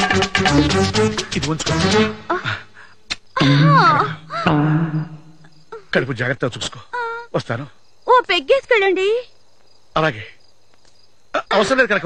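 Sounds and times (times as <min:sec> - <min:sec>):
crickets chirring: 0:02.3 - 0:12.0.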